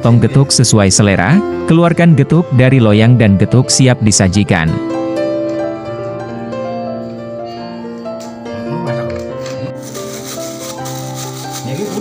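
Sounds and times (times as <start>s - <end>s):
background music with sustained notes: 0.0s - 12.0s
plastic scoop scraping in tray: 9.8s - 12.0s.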